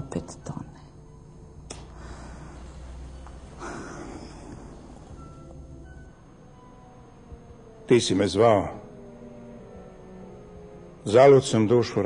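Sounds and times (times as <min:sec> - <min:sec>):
faint low hum: 0:00.0 - 0:12.0
soft hiss: 0:00.1 - 0:12.0.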